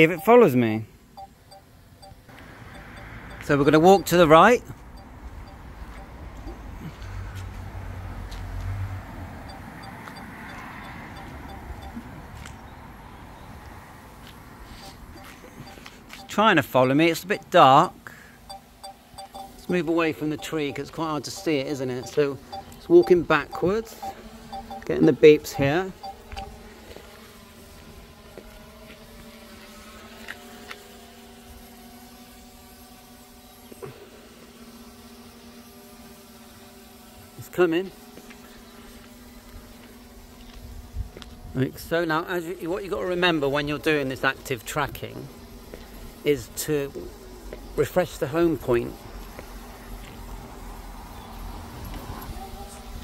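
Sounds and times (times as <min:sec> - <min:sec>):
faint ticks: 0:01.2 - 0:04.2, 0:09.5 - 0:12.6, 0:14.2 - 0:17.6, 0:18.5 - 0:25.0, 0:25.6 - 0:26.6.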